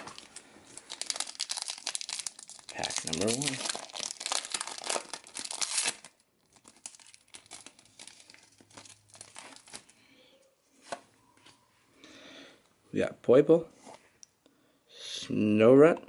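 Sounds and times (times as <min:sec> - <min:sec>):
foil wrapper tearing and crinkling: 0:00.0 - 0:09.9.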